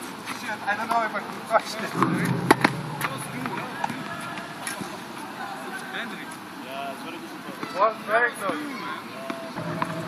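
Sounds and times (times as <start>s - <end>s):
outdoor background noise: 0.0s - 10.0s
faint indistinct voices: 0.3s - 10.0s.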